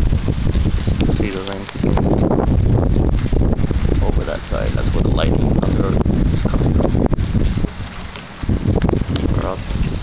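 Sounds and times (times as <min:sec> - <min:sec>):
gusty wind on microphone: 0:00.0 - 0:10.0.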